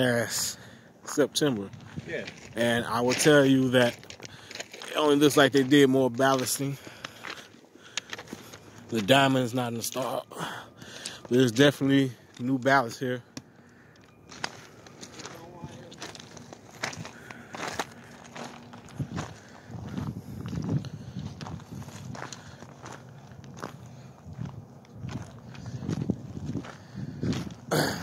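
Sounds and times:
footsteps crunching on gravel: 0.2 - 28.0.

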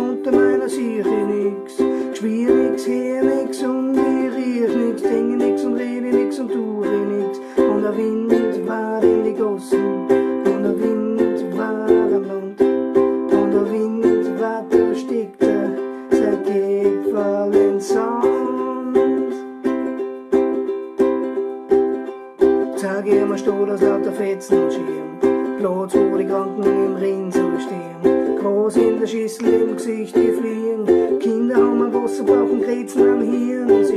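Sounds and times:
ukulele strummed in reggae rhythm: 0.0 - 33.9.

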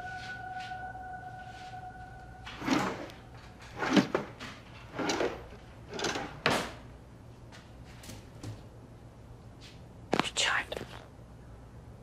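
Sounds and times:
woman whispering: 10.2 - 11.1.

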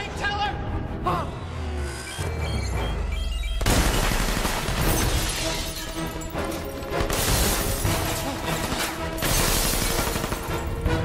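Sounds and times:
film score music: 0.0 - 11.0
gunfire: 3.6 - 5.4
glass shattering: 3.6 - 10.7.

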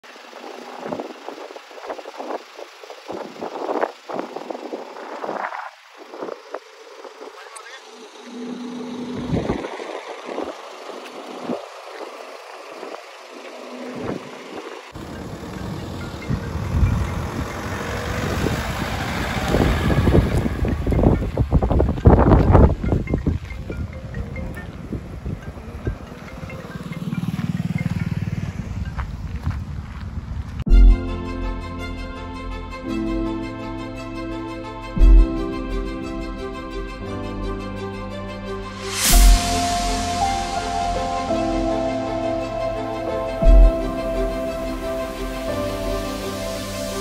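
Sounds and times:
heavy low rumble: 8.0 - 47.0
people's voices: 23.4 - 26.9.

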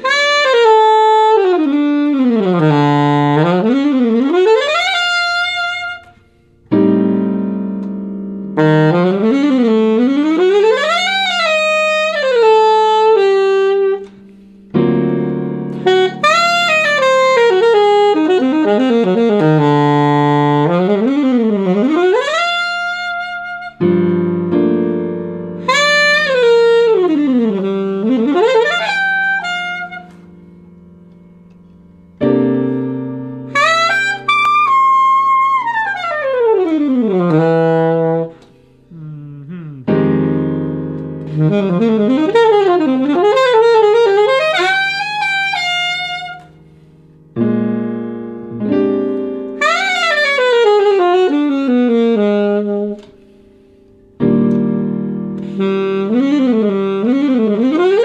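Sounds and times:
alto saxophone playing scales: 0.0 - 58.0
piano chords: 0.0 - 58.0.

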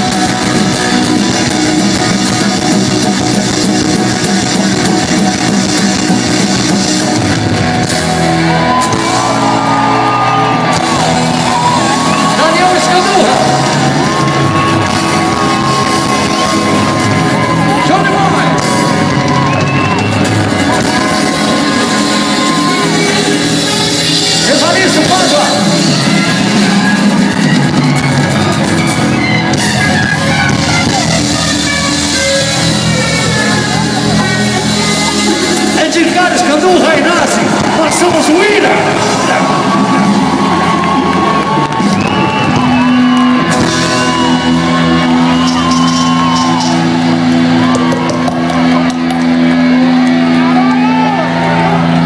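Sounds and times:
crowd shouting and whooping: 0.0 - 52.0
live rock band playing: 0.0 - 52.0
electric guitar chord ringing: 43.4 - 52.0.

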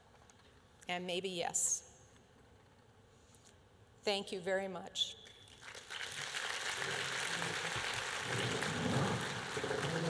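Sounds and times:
audience applause: 5.6 - 10.0.

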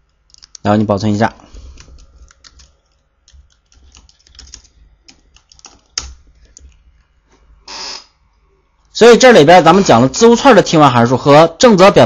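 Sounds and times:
typing on computer keyboard: 1.7 - 6.8
short burst of noise: 7.6 - 8.2.

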